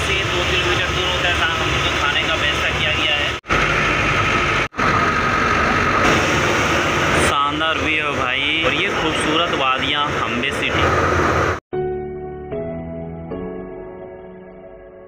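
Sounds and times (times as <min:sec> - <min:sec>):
passengers chatting: 0:00.0 - 0:03.4, 0:07.2 - 0:11.0
bus engine and road rumble: 0:00.0 - 0:11.6.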